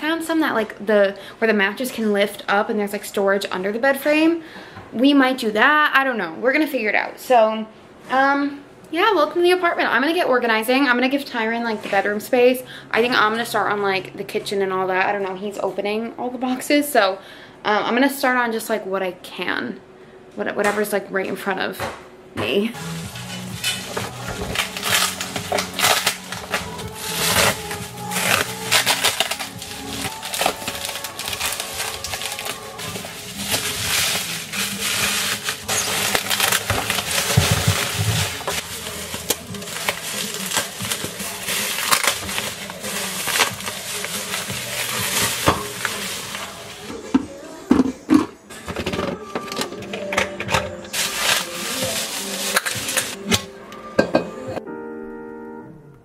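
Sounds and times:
background music: 22.7s - 56.0s
bubble wrap crinkling: 22.8s - 47.0s, 50.9s - 53.5s.

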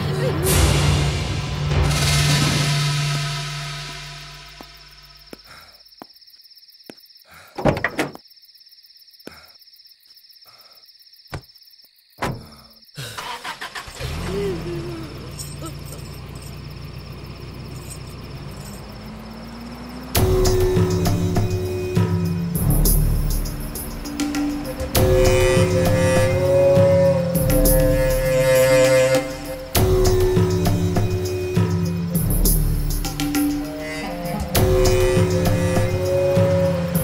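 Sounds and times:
film music: 0.0s - 5.3s, 19.3s - 37.0s.

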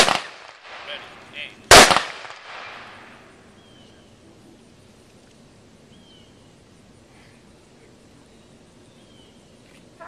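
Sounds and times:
rifle volley echo: 0.0s - 3.2s.

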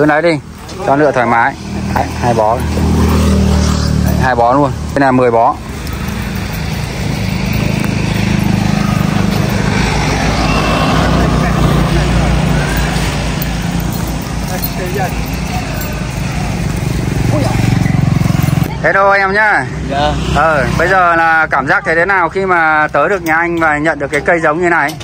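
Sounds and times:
vehicle engine rumbling: 0.0s - 25.0s
faint voices: 4.0s - 20.2s.

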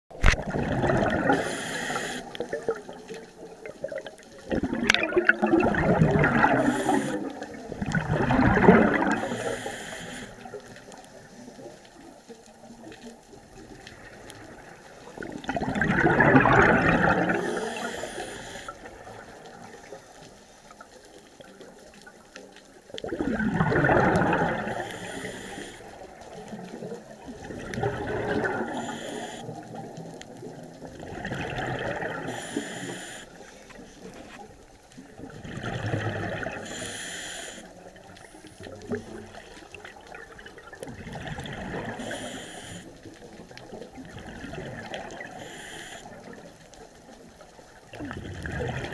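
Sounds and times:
gurgling exhalation bubbles: 0.1s - 10.6s, 13.7s - 19.8s, 23.0s - 33.2s, 34.0s - 36.9s, 37.5s - 46.4s, 47.8s - 48.9s
regulator inhalation hiss: 1.3s - 2.4s, 6.6s - 7.3s, 9.2s - 10.6s, 17.4s - 18.8s, 24.7s - 26.0s, 28.7s - 29.6s, 32.3s - 33.7s, 36.6s - 37.8s, 42.0s - 43.0s, 45.3s - 46.2s.

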